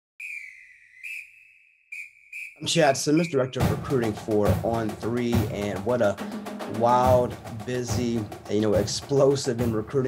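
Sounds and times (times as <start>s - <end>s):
high whistle-like tone: 0.2s - 3.6s.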